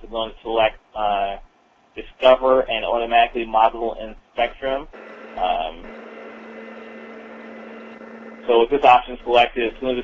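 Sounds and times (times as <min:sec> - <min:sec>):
low hum and hiss of call line: 0:00.0 - 0:10.0.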